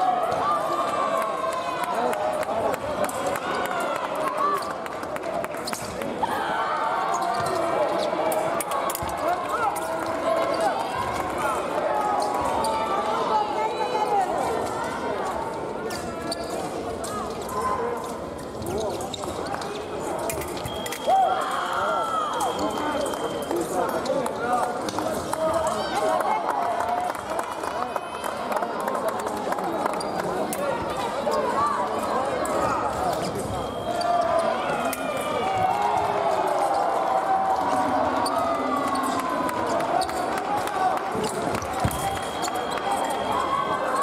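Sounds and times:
voices echoing in a hall: 0.0s - 44.0s.

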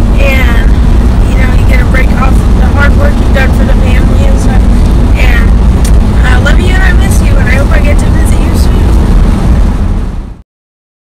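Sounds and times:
car road and engine rumble: 0.0s - 10.4s
girl talking: 1.3s - 5.5s, 6.2s - 9.0s.

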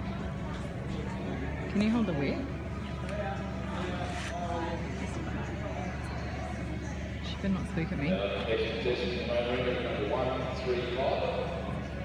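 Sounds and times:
distant chatter echoing: 0.0s - 12.0s.

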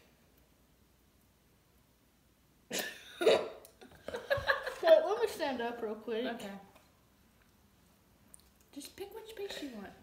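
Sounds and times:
person coughing: 2.7s - 3.6s.

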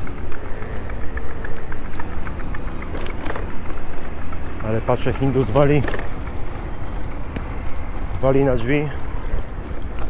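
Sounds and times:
light rattling ticks: 0.0s - 10.0s
road noise from bike: 0.0s - 10.0s
wind rumbling on microphone: 0.0s - 10.0s.

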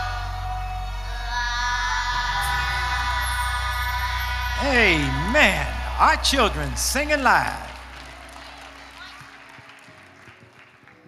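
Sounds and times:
children's choir singing: 0.0s - 9.1s
backing music: 0.0s - 10.4s.

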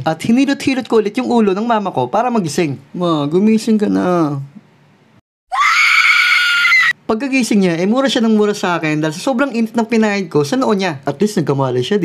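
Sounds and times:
woman screaming: 5.5s - 7.0s.

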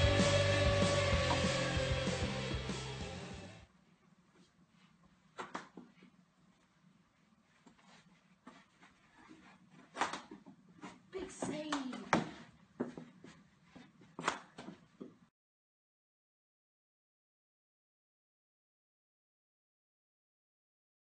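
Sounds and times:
sticks and ball knocking: 1.2s - 1.8s.

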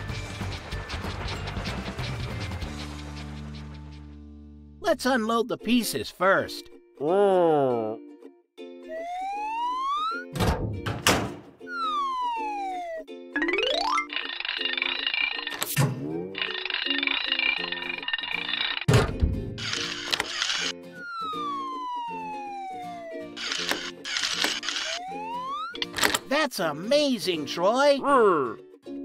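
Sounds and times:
cartoon music with bouncy bass: 8.8s - 14.2s
whistle-like glides: 21.0s - 23.4s.

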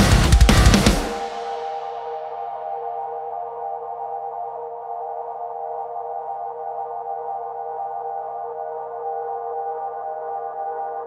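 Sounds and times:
metal band playing: 0.0s - 2.1s
ambient synthesizer pad chord: 0.0s - 11.0s.

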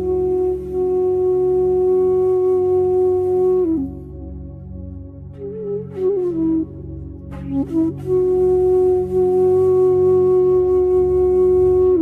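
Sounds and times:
bamboo flute long note: 0.0s - 4.6s, 5.3s - 12.0s.

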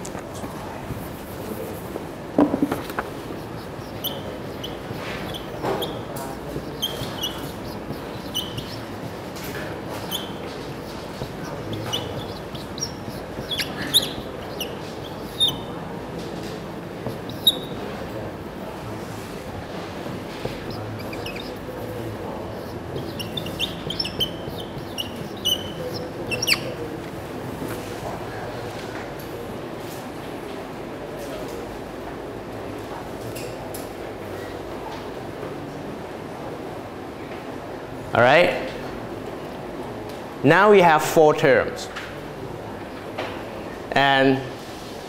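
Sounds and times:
steady room hum: 0.0s - 45.0s
marker squeaking on whiteboard: 1.0s - 27.9s
scratchy rubbing of marker tip: 2.9s - 15.7s, 17.1s - 17.9s, 19.7s - 26.8s.

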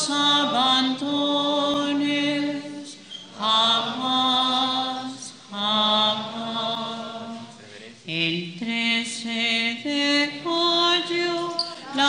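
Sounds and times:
hymn sung in unison: 0.0s - 12.0s.

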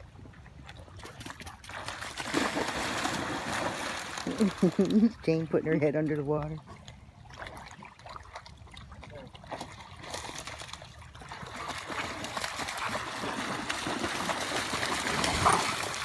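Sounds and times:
dogs splashing through water: 0.3s - 16.0s.

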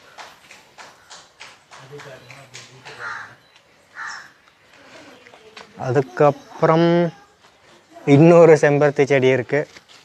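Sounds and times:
crow cawing: 2.9s - 4.4s.

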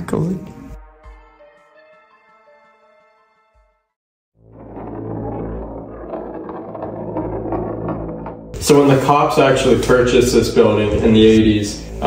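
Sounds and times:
low rumbling drone: 4.4s - 9.8s.

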